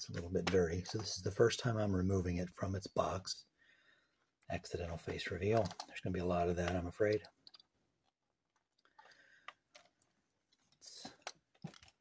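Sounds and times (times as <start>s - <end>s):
faint handling clicks: 5.0s - 12.0s.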